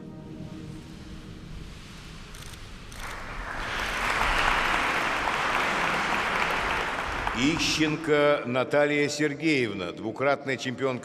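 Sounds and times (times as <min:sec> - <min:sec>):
audience applause: 0:02.9 - 0:08.3.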